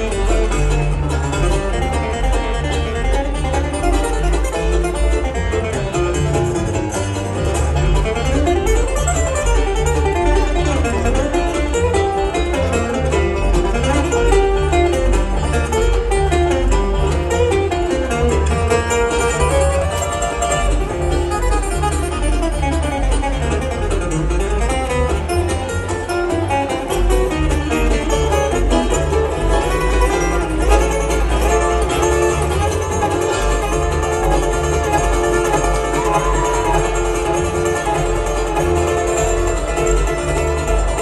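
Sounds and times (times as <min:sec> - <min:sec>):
banjo: 0:00.0 - 0:41.0
bluegrass band playing: 0:00.0 - 0:41.0.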